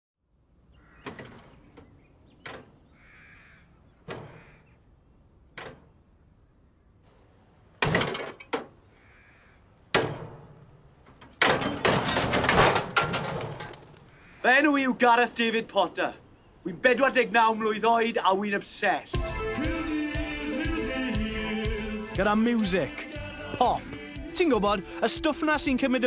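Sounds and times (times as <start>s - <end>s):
faint bird calls: 0.5s - 5.3s, 8.8s - 9.8s
metallic bangs on car bodywork: 9.9s - 10.7s.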